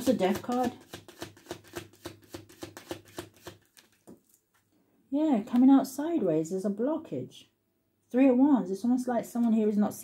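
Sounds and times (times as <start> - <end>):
cards being shuffled: 0.0 - 4.6.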